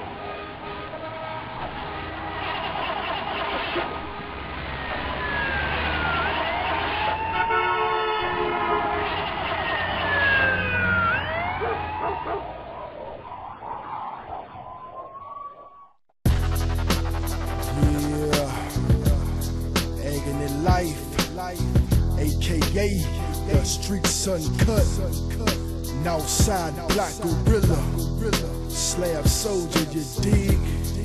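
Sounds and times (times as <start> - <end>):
sirens wailing: 0.0 - 21.0
street noise: 0.0 - 31.0.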